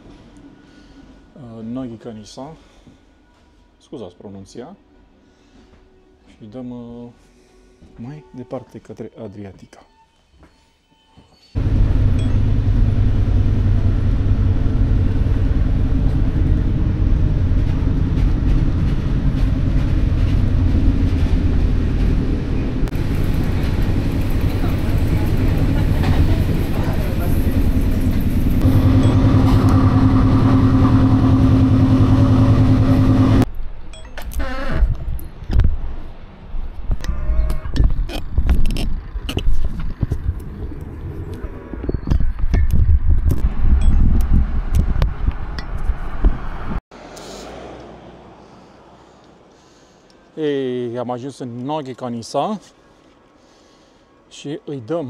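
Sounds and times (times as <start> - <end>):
train rumbling: 11.6 - 33.5.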